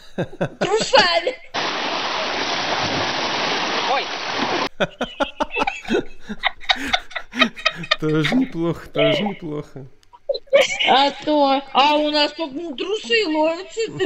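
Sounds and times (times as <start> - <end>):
people laughing: 0.0 - 1.6, 3.9 - 11.5, 13.1 - 14.0
water splashing at shoreline: 1.5 - 4.7
people chattering: 8.0 - 14.0.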